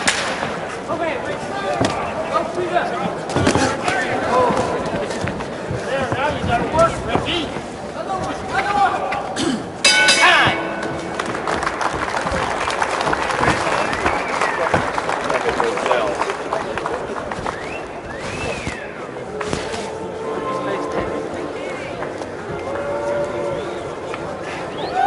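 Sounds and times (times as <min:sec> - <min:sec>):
crowd noise: 0:00.0 - 0:25.0
voices: 0:00.0 - 0:25.0
boxing ring bell ringing: 0:09.8 - 0:11.5.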